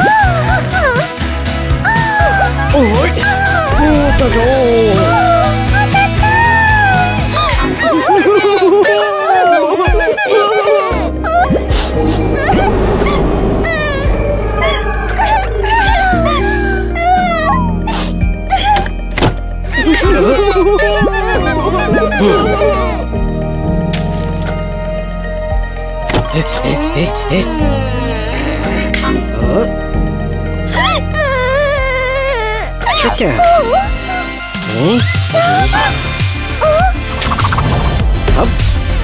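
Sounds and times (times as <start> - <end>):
cartoon background music: 0.0 - 39.0.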